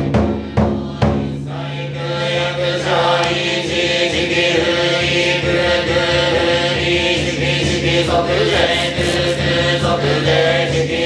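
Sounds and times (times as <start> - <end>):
monks chanting in unison: 0.0 - 11.0.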